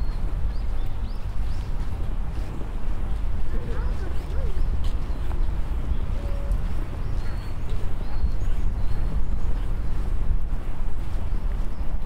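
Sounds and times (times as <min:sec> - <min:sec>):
wind buffeting microphone: 0:00.0 - 0:12.0
faint voices: 0:02.9 - 0:05.4.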